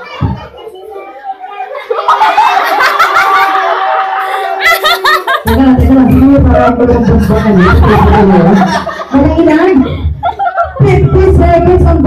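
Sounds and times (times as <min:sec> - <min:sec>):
children chattering: 0:00.0 - 0:05.5.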